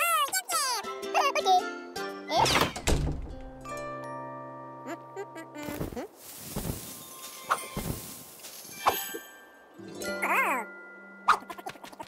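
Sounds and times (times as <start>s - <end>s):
gliding cartoon character voice: 10.1s - 10.7s.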